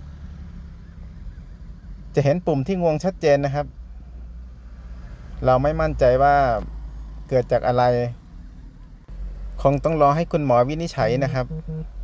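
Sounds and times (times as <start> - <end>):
vehicle engine idling: 0.0 - 12.0
faint high chirps: 11.3 - 12.0.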